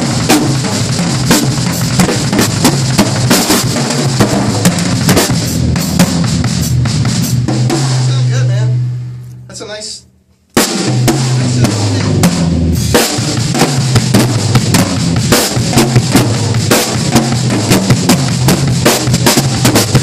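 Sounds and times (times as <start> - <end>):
drum kit groove: 0.0 - 20.0.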